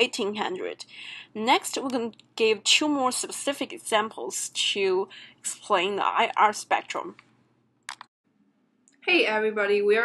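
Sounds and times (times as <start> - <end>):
sharp clicks: 7.2 - 8.1.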